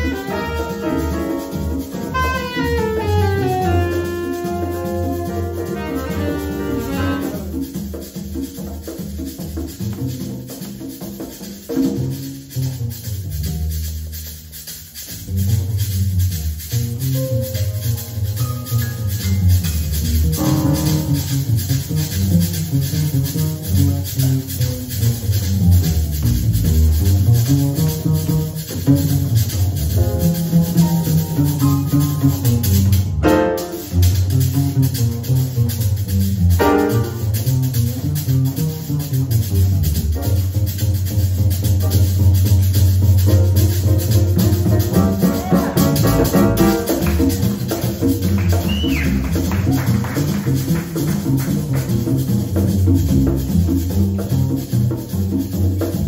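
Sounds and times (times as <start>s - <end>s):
piano chords: 0.0s - 7.4s, 43.4s - 47.6s
congas: 0.0s - 56.0s
maracas shaking: 0.0s - 56.0s
pizzicato double bass: 0.0s - 56.0s.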